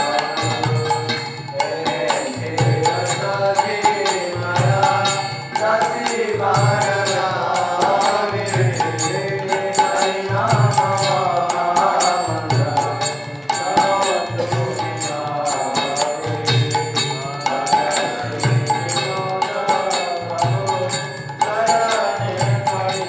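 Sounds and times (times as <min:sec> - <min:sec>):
devotional chanting: 0:00.0 - 0:23.0
drum beats: 0:00.0 - 0:23.0
hand cymbal strikes: 0:00.0 - 0:23.0.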